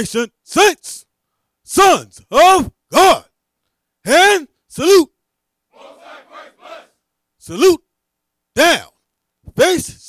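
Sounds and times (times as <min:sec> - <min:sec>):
congregation shouting a response: 0:05.8 - 0:07.0
leader's voice: 0:05.8 - 0:07.0.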